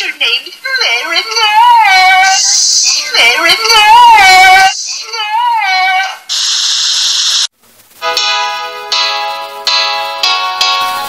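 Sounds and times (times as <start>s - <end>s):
steady hiss: 2.2s - 5.2s, 6.2s - 11.0s
light cartoon music: 8.0s - 11.0s.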